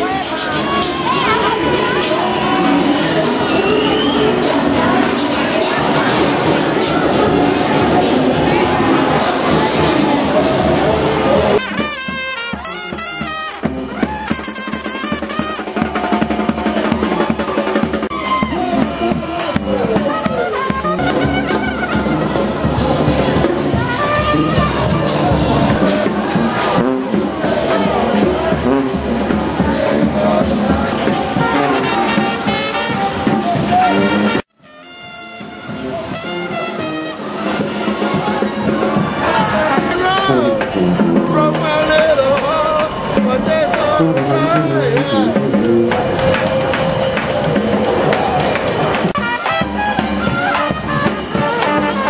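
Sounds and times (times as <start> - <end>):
bass drum and drums beat: 0.0 - 52.0
brass band playing: 0.0 - 52.0
trumpet lines: 0.0 - 52.0.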